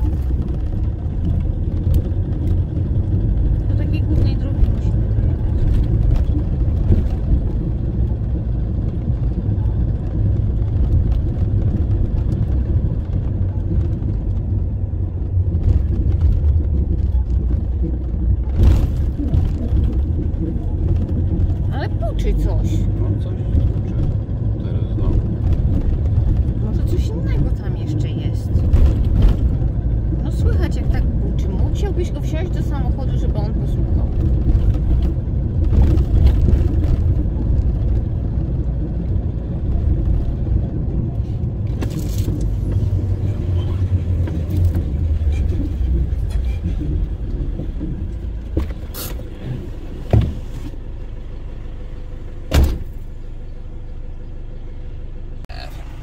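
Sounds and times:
low engine and road rumble: 0.0s - 56.0s.

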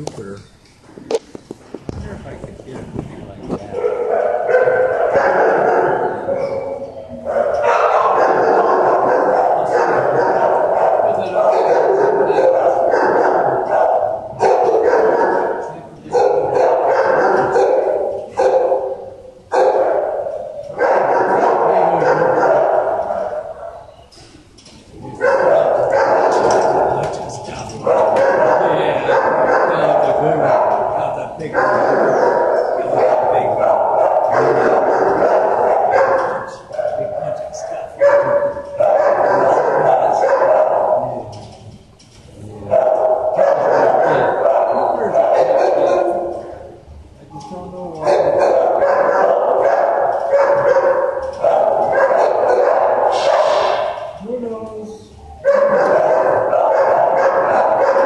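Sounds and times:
dogs barking: 3.6s - 24.1s, 24.8s - 41.7s, 42.5s - 47.2s, 48.0s - 54.2s, 55.1s - 58.0s.

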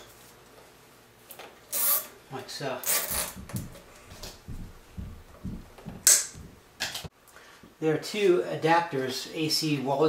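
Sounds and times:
cable tie zipping tight: 1.7s - 2.1s, 2.8s - 3.8s
soft knocks and rustles: 3.3s - 7.1s.

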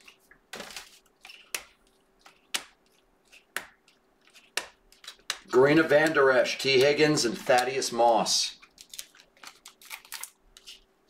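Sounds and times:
card stock rustling: 0.0s - 10.9s
trading cards snapping: 0.6s - 7.8s.

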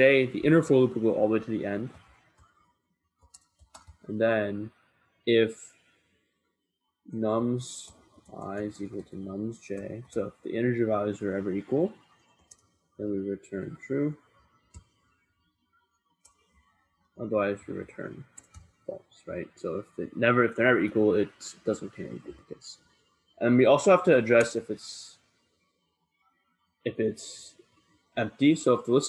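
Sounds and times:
keyboard typing: 3.2s - 4.1s, 14.7s - 15.0s, 18.2s - 18.7s.

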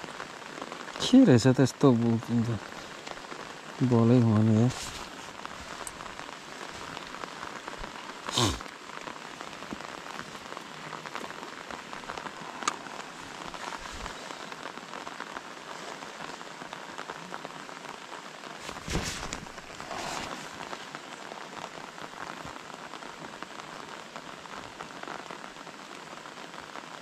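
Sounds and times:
rain falling on a lake: 0.0s - 27.0s.

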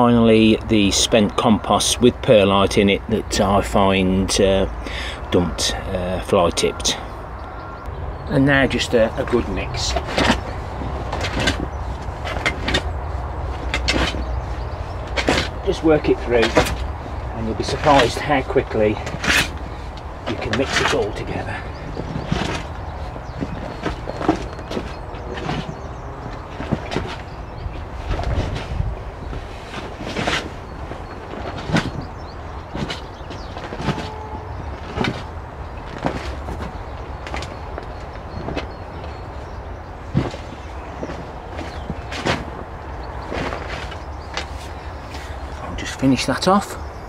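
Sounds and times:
spade digging compost: 8.5s - 37.8s.

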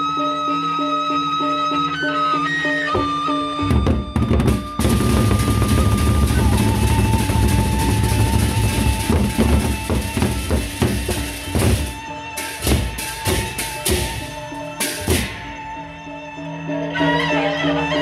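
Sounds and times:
held high note: 2.8s - 16.2s
barrel drums beaten with sticks: 3.0s - 15.8s.

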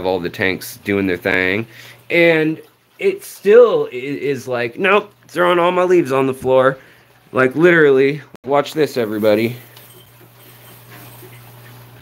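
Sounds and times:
aquarium equipment humming: 8.9s - 12.0s.

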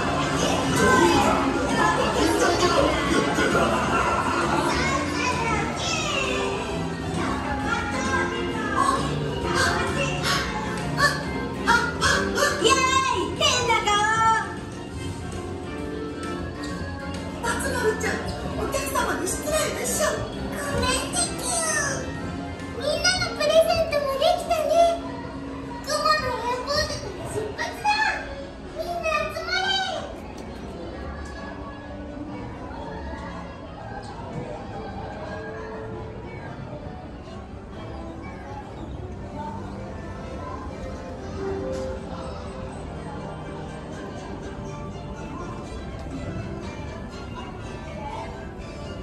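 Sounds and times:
background music: 0.0s - 49.0s
children's voices and chatter: 0.0s - 49.0s
high-pitched childlike voices: 4.5s - 14.2s, 19.6s - 22.2s.

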